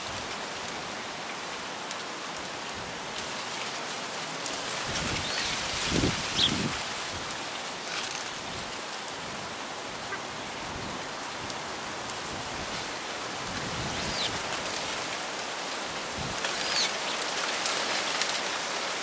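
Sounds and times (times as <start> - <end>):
wind blowing through grass: 0.0 - 19.0
wind rumble on microphone: 4.7 - 7.5, 8.3 - 15.0, 16.0 - 16.6.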